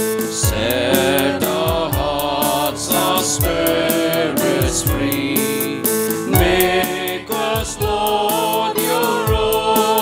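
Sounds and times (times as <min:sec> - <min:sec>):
percussion strokes: 0:00.0 - 0:09.2
choir singing a hymn: 0:00.3 - 0:10.0.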